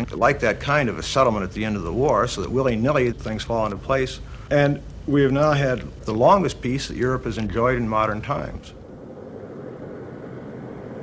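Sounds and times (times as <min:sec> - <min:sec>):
steady rumbling noise: 0:00.0 - 0:11.0.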